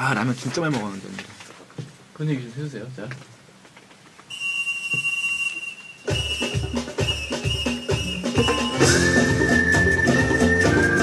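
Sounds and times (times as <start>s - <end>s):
steady drum beat: 6.1s - 11.0s.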